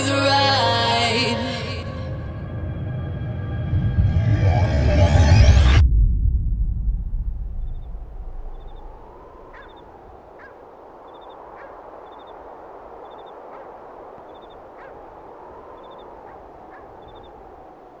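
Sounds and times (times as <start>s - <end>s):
music: 0.0s - 5.8s
faint high chirp: 8.5s - 12.4s, 13.0s - 13.5s, 14.2s - 15.0s, 15.7s - 17.5s
short bird calls: 9.5s - 12.4s, 13.0s - 15.1s.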